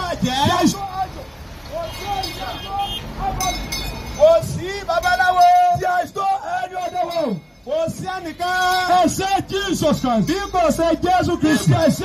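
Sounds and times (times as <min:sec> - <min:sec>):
man speaking through loudspeaker: 0:00.0 - 0:03.6, 0:04.2 - 0:12.0
street noise: 0:00.0 - 0:12.0.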